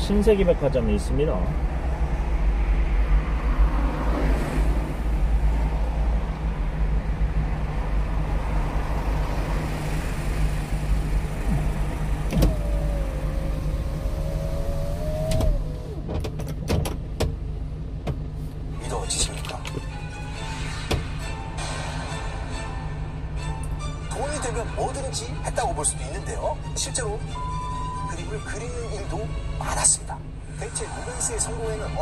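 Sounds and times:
truck engine idling: 8.6s - 16.1s
electric motor whine: 10.2s - 16.0s.

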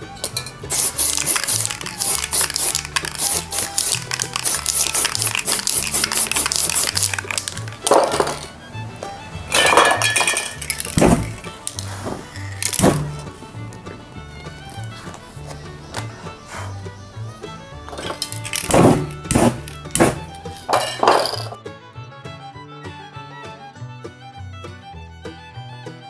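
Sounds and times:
background music with bass line: 0.0s - 26.0s
spray paint can hissing: 0.7s - 8.5s, 9.5s - 13.3s, 14.5s - 16.8s, 17.4s - 21.4s.

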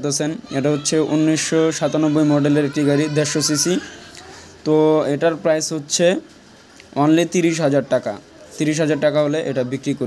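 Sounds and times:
man talking: 0.0s - 6.3s, 6.9s - 10.0s.

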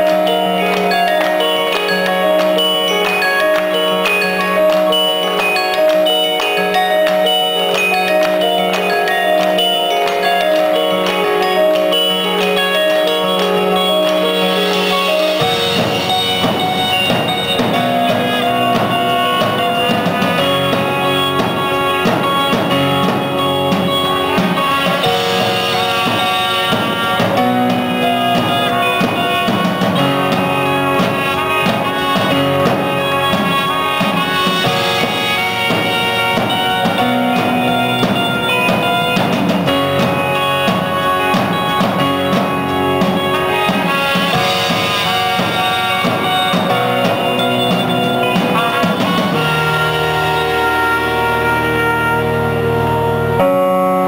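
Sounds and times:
live band playing instrumental: 0.0s - 54.0s
trumpet lines: 0.0s - 54.0s.

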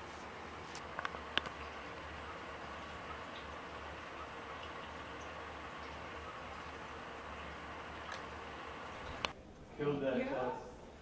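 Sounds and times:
constant low hum: 0.0s - 9.8s.

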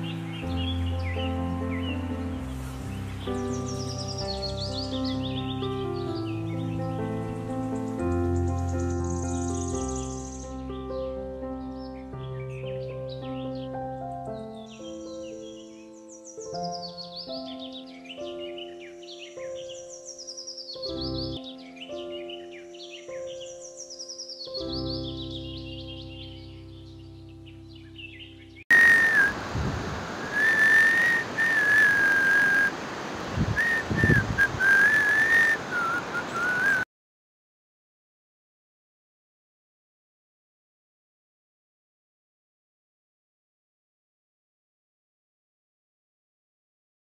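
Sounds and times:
instrumental background music: 0.0s - 28.6s
person whistling a tune: 28.7s - 29.4s, 30.2s - 32.7s, 33.6s - 36.9s
steady rushing noise: 28.8s - 36.6s.

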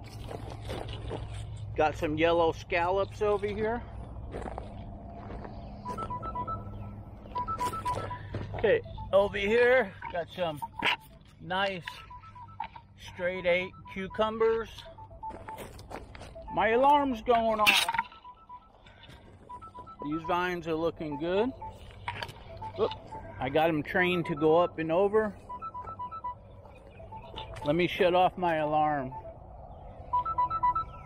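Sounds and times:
two-pitch alarm beeps: 5.7s - 31.0s.

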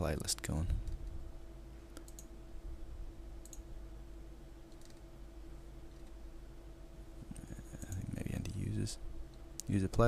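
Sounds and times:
faint steady hum: 0.0s - 10.0s
computer mouse clicking: 2.0s - 2.3s, 3.4s - 3.7s, 4.7s - 5.0s, 7.4s - 8.6s.

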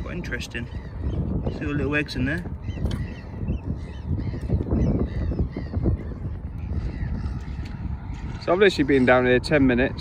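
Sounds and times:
wind rumbling on microphone: 0.0s - 10.0s
faint bird caws: 2.6s - 9.3s.

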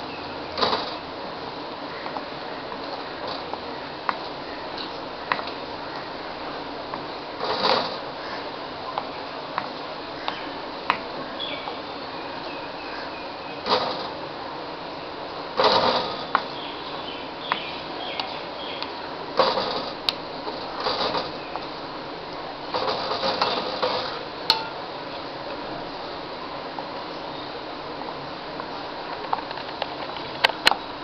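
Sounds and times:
steady hiss: 0.0s - 31.0s.

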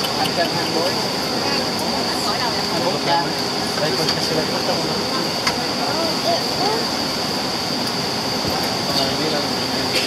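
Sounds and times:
jet engine rumble and whine: 0.0s - 10.0s.

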